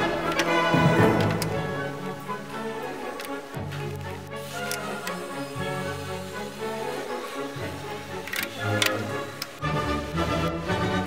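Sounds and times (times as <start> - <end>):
background music melody: 0.0 - 11.0.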